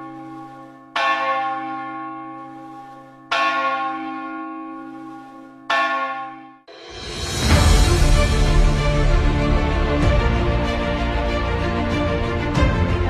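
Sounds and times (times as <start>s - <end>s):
large bell tolling: 5.7s - 10.6s
deep hum: 6.8s - 13.0s.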